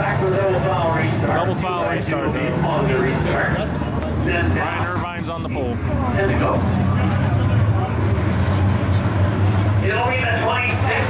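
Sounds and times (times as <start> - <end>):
race car engines rumbling: 0.0 - 11.0.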